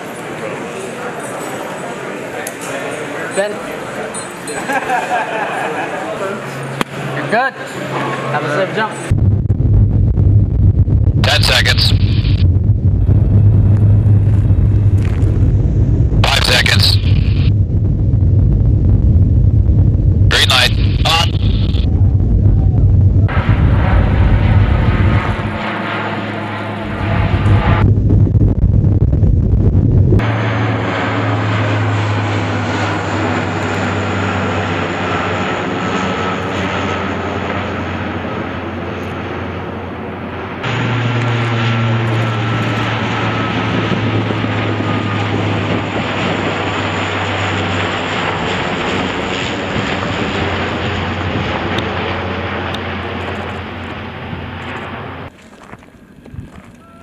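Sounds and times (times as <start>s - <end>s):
turboprop engines droning: 0.0s - 57.0s.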